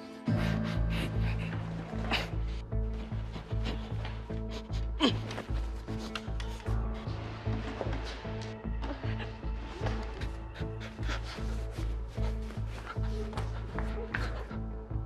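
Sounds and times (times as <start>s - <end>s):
tense background score: 0.0s - 15.0s.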